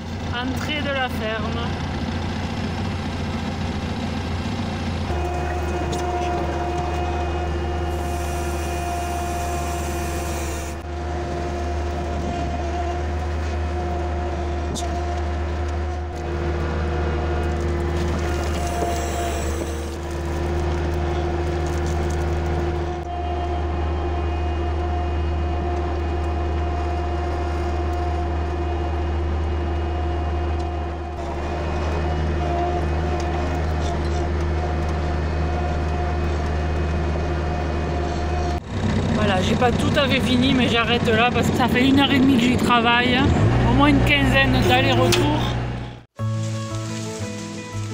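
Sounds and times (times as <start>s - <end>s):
tractor engine running: 0.0s - 47.9s.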